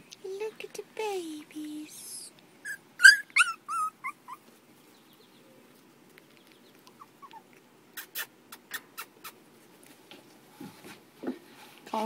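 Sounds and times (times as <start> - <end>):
puppies squeaking and whimpering: 2.6 - 4.5, 6.3 - 9.4.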